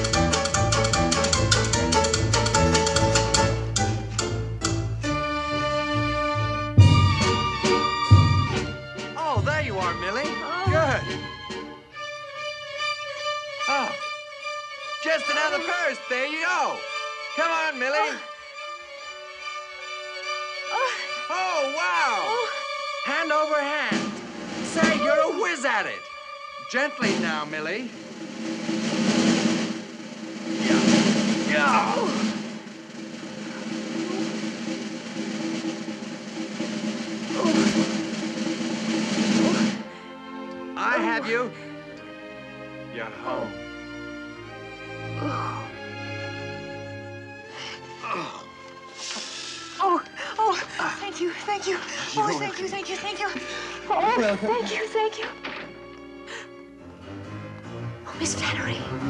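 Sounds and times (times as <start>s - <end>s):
snare drum roll: 23.9s - 25.4s, 27.0s - 39.9s.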